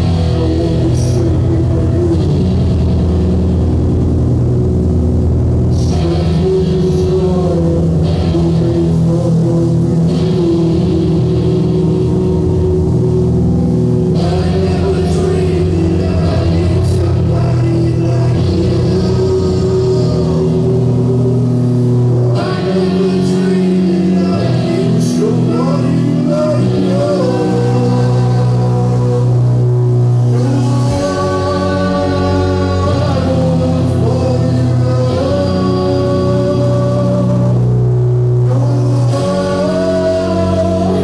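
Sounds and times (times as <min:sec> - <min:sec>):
live rock band: 0:00.0 - 0:41.0.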